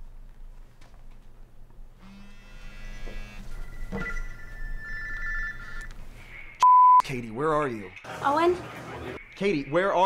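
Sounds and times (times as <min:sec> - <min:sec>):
phone electronic ringtone: 0:02.4 - 0:05.9.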